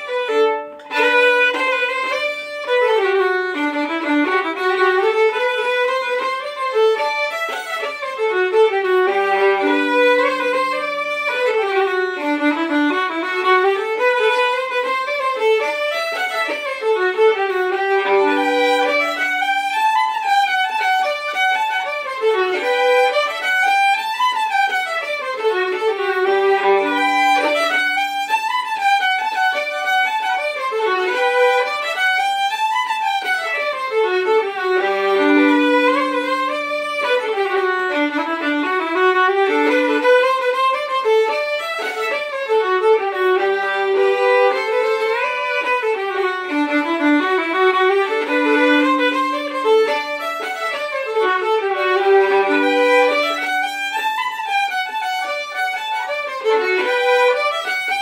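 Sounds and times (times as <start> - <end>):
fiddles playing a jig: 0.0 - 58.0.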